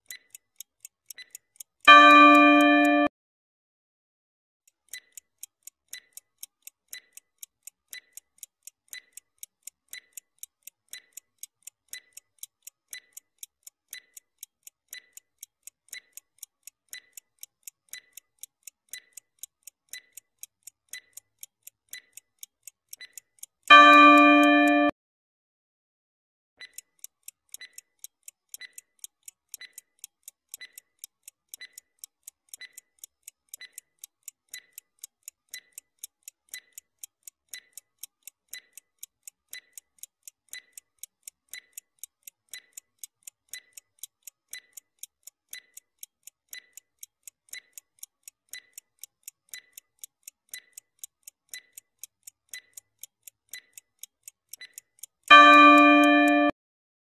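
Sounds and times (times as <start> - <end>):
clock ticking: 0.0 - 3.1, 4.7 - 24.9, 26.6 - 56.6.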